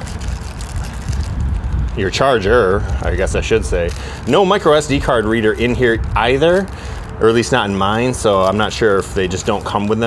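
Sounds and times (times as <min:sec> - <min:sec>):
plastic bag crinkling: 0:00.0 - 0:10.0
wind rumbling on microphone: 0:00.0 - 0:10.0.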